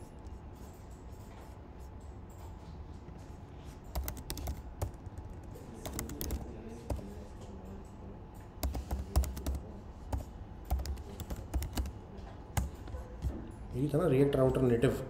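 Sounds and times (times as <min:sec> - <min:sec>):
computer keyboard typing: 0:03.7 - 0:13.0.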